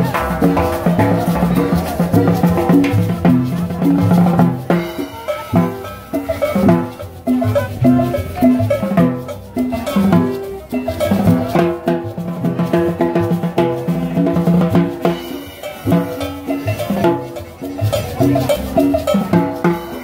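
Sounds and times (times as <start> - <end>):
drum kit beat: 0.0 - 20.0
live band playing dance music: 0.0 - 20.0.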